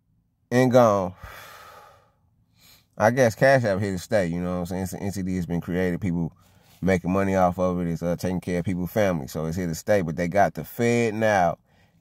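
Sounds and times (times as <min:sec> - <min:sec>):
faint intake of breath: 0:01.1 - 0:03.0, 0:06.4 - 0:06.8
man sighing: 0:01.2 - 0:02.1.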